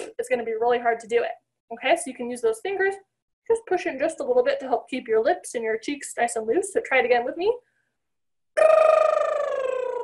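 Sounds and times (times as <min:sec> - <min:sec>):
woman's voiced lip trill: 0:08.6 - 0:10.0.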